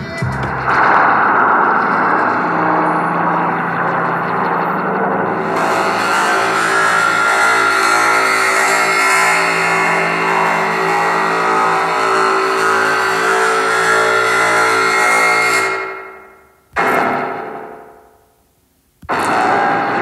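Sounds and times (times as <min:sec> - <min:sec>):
electronic synthesizer drone: 0:00.0 - 0:18.2, 0:19.0 - 0:20.0.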